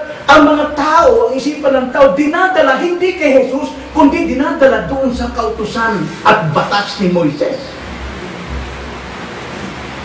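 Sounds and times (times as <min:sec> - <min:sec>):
steady hiss: 0:00.0 - 0:10.0
low hum: 0:07.5 - 0:10.0.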